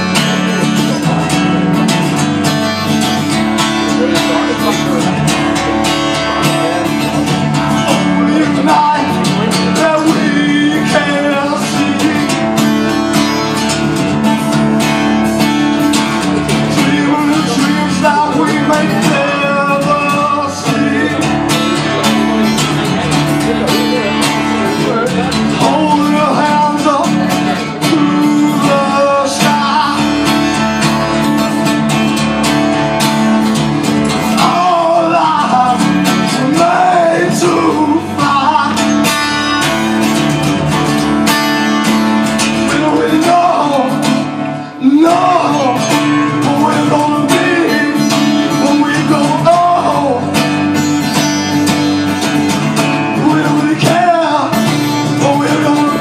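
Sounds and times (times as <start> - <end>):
man singing: 0.0 - 31.9, 33.8 - 56.0
acoustic guitar strumming: 0.0 - 56.0.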